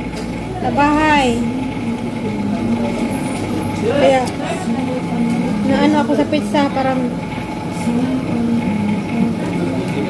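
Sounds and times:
people's voices: 0:00.0 - 0:10.0
steady low hum: 0:00.0 - 0:10.0.

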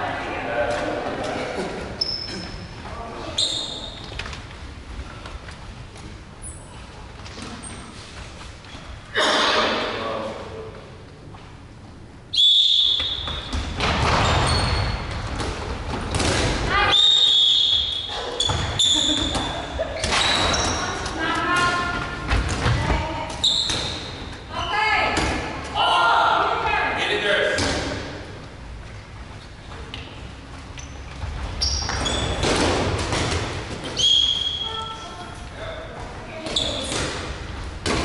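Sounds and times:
balls hitting players and floor: 0:00.6 - 0:03.0, 0:07.1 - 0:08.8, 0:12.8 - 0:25.9, 0:27.5 - 0:34.9, 0:35.9 - 0:38.0.

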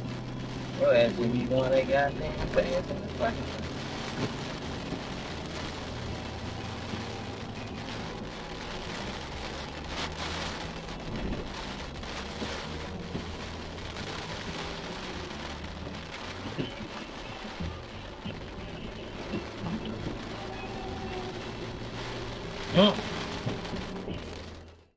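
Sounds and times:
music playing low: 0:00.0 - 0:24.9
rain pattering on car roof: 0:00.0 - 0:24.9.

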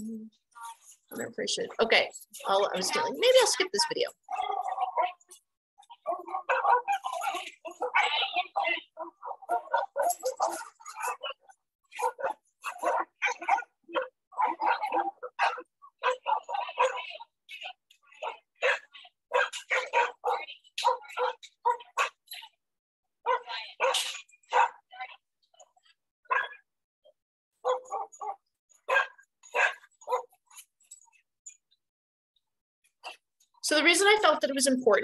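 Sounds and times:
dogs barking: 0:02.7 - 0:22.4, 0:23.2 - 0:24.9, 0:26.3 - 0:26.7, 0:27.6 - 0:30.6.

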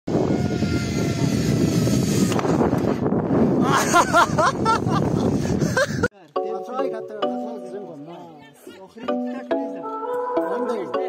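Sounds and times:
zip line pulleys whirring: 0:00.1 - 0:03.4.

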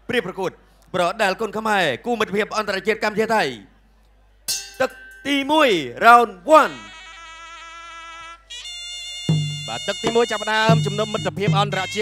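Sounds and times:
nasal reed pipe melody: 0:06.6 - 0:12.0
drum beats: 0:09.3 - 0:12.0.

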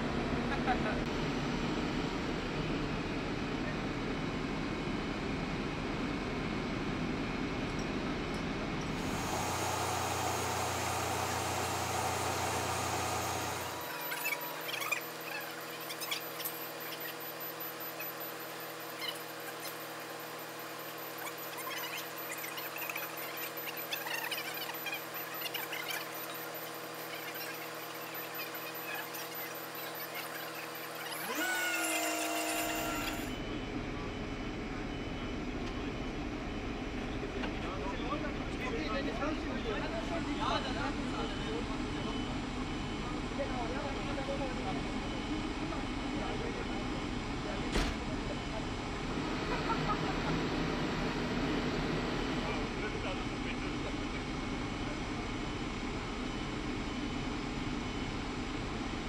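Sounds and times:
diesel engine running: 0:08.6 - 0:15.6
short rising whine: 0:08.9 - 0:25.0, 0:26.6 - 0:33.5.

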